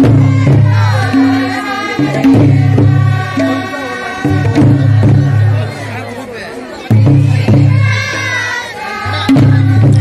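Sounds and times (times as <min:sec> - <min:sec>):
crowd chattering and singing: 0:00.0 - 0:10.0.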